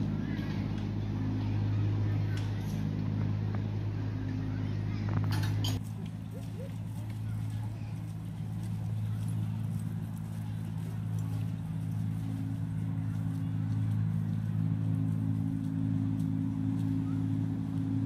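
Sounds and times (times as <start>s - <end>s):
diesel locomotive engine droning: 0.0s - 18.0s.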